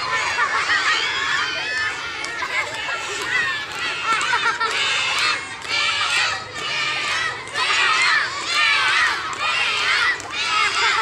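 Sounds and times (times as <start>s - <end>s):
young children shouting: 0.0s - 11.0s.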